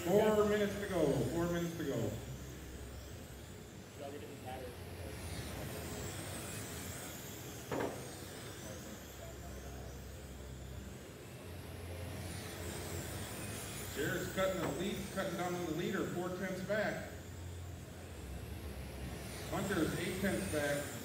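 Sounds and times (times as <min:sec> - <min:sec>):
rc car motors whining: 0:00.0 - 0:21.0.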